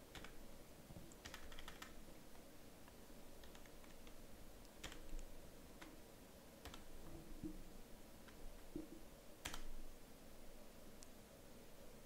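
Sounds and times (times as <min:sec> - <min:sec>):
computer keyboard typing: 0:00.1 - 0:00.4, 0:01.1 - 0:02.0, 0:03.4 - 0:04.2, 0:04.8 - 0:05.2, 0:06.6 - 0:06.9, 0:09.4 - 0:09.7.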